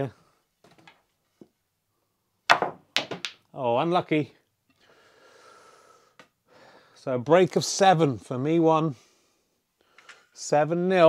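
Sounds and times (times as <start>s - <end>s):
snooker balls clacking: 2.5s - 3.4s.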